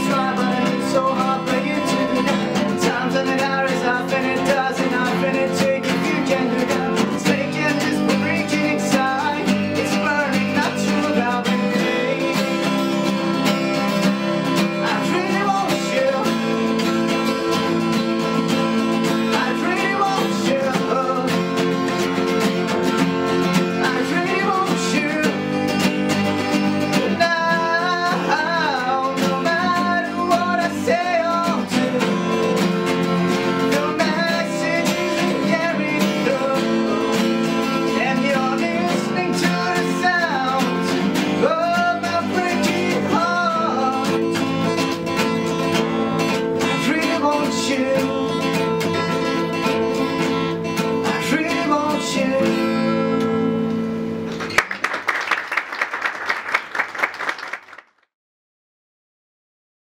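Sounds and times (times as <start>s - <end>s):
man singing: 0.0s - 17.2s, 18.4s - 22.1s, 23.5s - 25.9s, 26.8s - 49.5s, 50.9s - 53.6s
acoustic guitars strummed: 0.0s - 55.2s.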